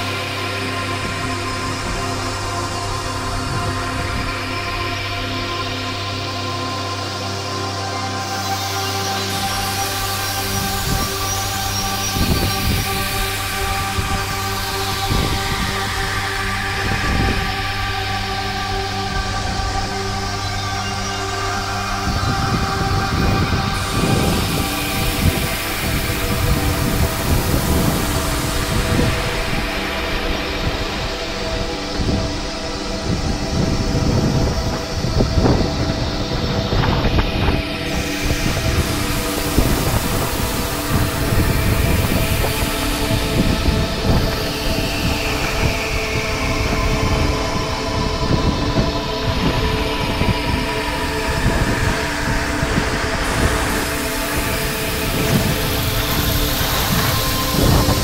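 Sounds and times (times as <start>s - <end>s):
wind buffeting microphone: 9.3s - 58.0s.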